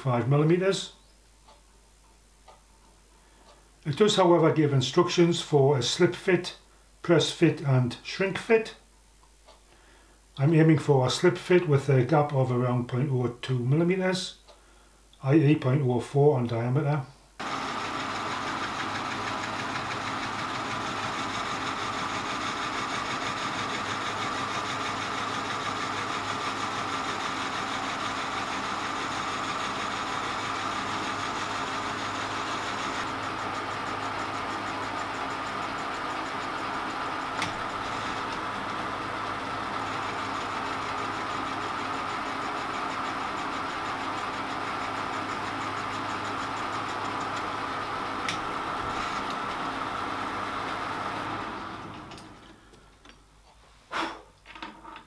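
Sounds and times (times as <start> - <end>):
metal lathe humming and whining: 17.4 - 51.3.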